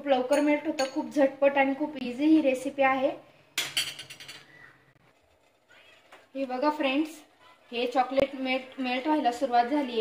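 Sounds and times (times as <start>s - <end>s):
metal spoon clinking on glass bowl: 0.2s - 1.1s.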